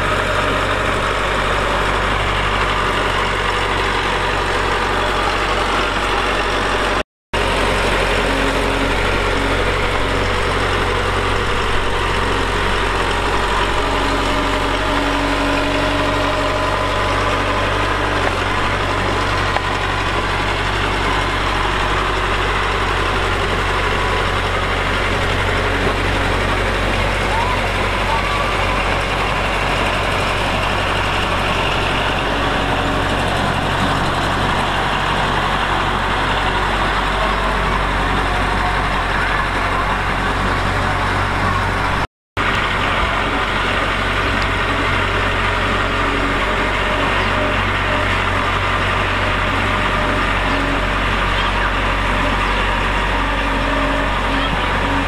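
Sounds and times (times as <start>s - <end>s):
bulldozer diesel engine running: 0.0s - 55.0s.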